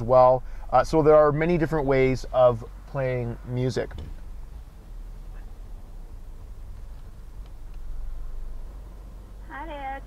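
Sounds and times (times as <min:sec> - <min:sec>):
car engine rumble from inside cabin: 0:00.0 - 0:10.0.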